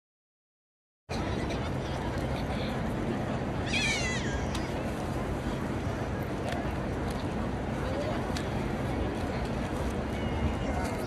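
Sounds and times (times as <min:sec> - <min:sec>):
outdoor crowd and city noise: 0:01.1 - 0:11.0.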